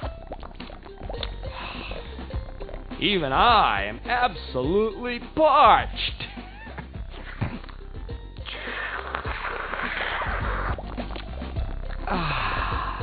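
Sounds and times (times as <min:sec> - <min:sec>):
background music with bass: 0:00.0 - 0:13.0
even hiss: 0:08.4 - 0:10.8.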